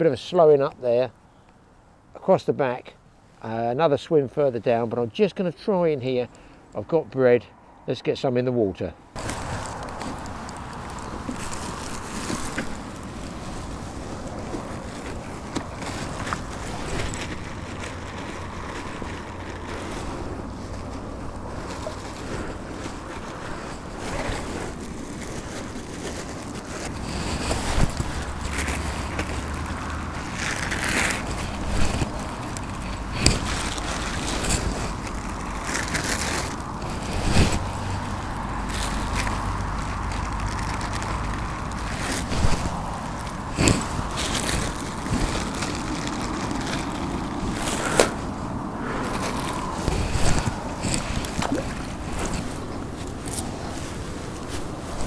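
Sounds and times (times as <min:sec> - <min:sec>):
plastic bag rustling: 0:09.2 - 0:55.0
river water rushing: 0:09.2 - 0:55.0
wind buffeting microphone: 0:09.2 - 0:55.0.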